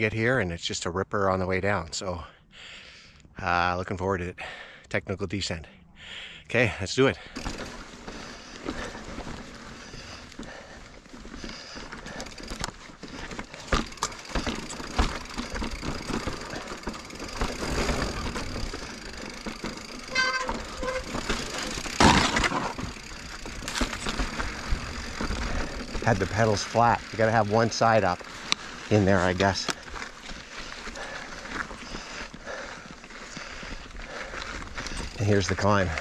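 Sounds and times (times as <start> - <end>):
bike knocking and rattling: 7.2 - 36.0
bike tyres rolling over rock: 7.2 - 36.0
rapid buzzing ticking: 7.2 - 36.0.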